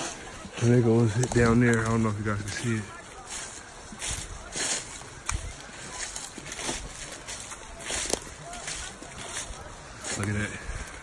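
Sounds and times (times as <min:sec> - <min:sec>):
footsteps crunching dry leaves: 0:00.0 - 0:11.0.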